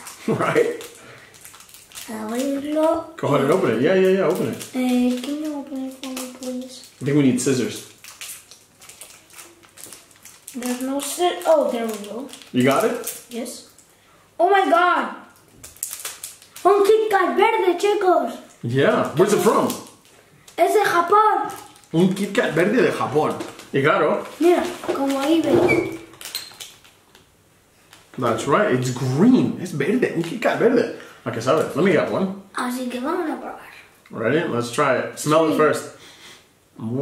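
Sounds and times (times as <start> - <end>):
plastic wrapper crinkling: 0.0 - 14.0, 15.2 - 29.0.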